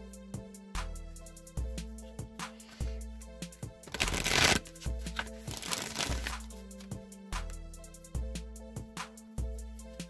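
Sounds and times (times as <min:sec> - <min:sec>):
background music with steady beat: 0:00.0 - 0:10.0
cards shuffling: 0:03.9 - 0:06.9.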